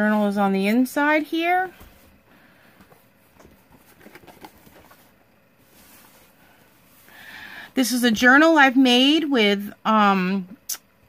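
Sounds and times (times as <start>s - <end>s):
soft taps and rustles: 1.7s - 2.2s, 2.8s - 5.1s.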